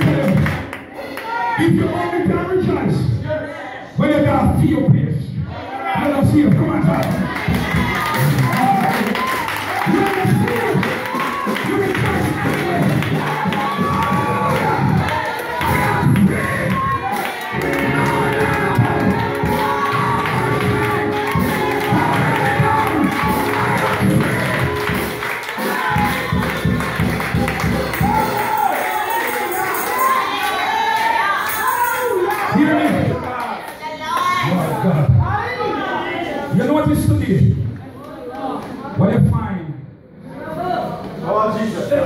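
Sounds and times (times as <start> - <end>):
church worship music: 0.0 - 33.9
many voices singing and calling: 12.1 - 32.4.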